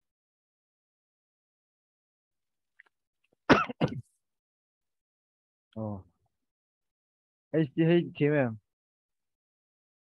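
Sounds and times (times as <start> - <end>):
person coughing: 3.5 - 4.1.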